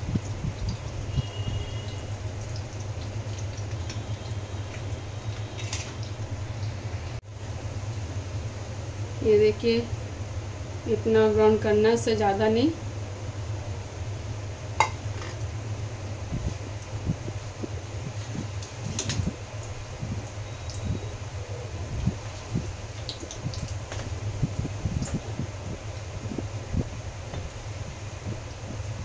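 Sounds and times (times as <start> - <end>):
oil crackling in a wok: 0.0 - 7.2, 16.2 - 29.0
steady low hum: 0.0 - 29.0.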